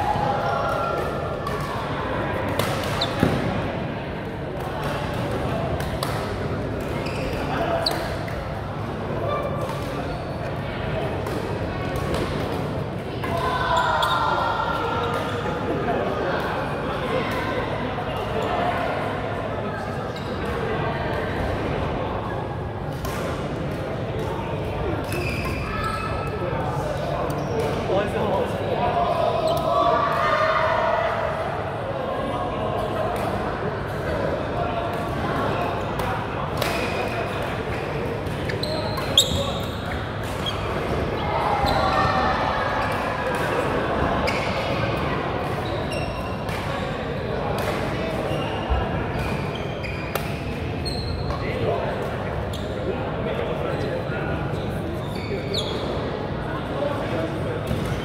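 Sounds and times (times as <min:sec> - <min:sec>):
players chatting: 0:00.0 - 0:58.0
shoes squeaking on court floor: 0:02.8 - 0:03.4, 0:06.8 - 0:08.3, 0:13.8 - 0:14.2, 0:25.1 - 0:28.0, 0:37.7 - 0:40.9, 0:41.6 - 0:42.1, 0:45.5 - 0:46.5, 0:47.9 - 0:51.6, 0:52.4 - 0:52.9, 0:53.7 - 0:56.0.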